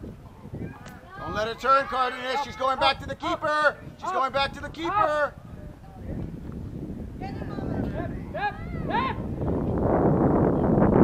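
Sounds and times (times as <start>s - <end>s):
outdoor noise: 0.0s - 11.0s.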